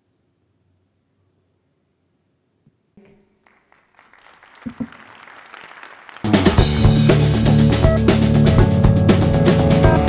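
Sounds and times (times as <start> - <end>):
audience applauding: 3.4 - 7.9.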